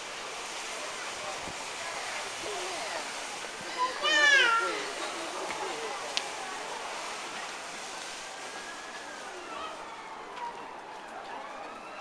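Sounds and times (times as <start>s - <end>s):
murmur of shoppers: 0.0s - 12.0s.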